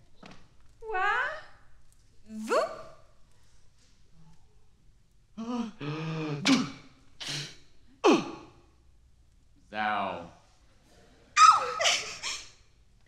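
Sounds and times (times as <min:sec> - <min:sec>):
falling whoop: 0:11.4 - 0:11.9
loud shrill cry: 0:11.4 - 0:12.4.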